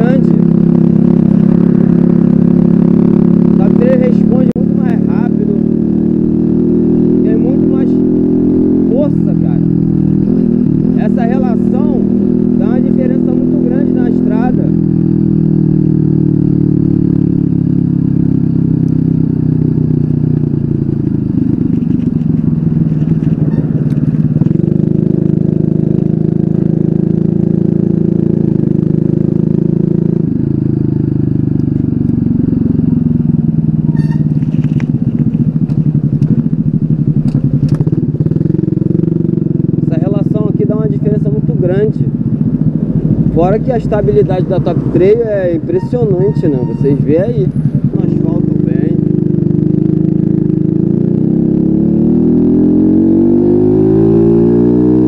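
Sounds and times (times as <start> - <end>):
moped engine running: 0.0 - 55.0.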